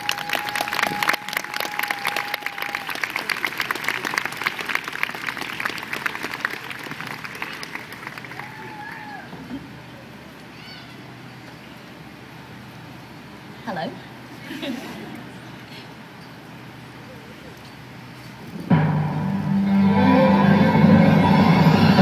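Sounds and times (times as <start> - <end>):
audience applauding: 0.0 - 9.2.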